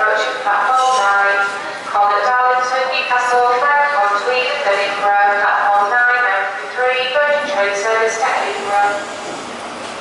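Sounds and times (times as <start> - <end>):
diesel train running: 6.7 - 10.0.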